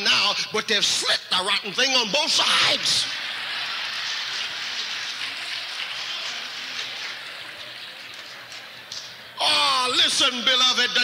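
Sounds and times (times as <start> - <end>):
audience applauding: 3.1 - 9.3.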